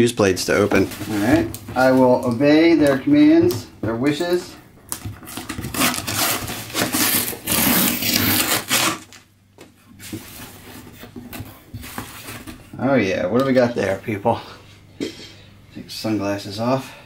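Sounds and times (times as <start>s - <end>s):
cardboard rustling and handling: 0.3s - 9.2s, 10.0s - 12.9s
packing tape ripping: 4.9s - 9.3s.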